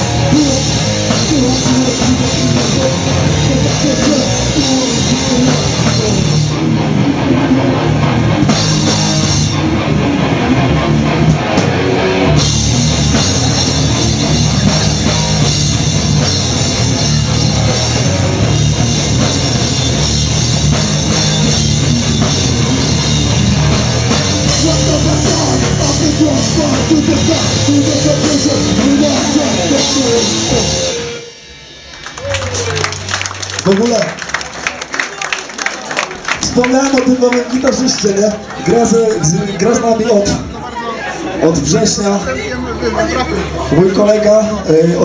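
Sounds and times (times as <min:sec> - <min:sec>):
punk band playing live: 0:00.0 - 0:45.0.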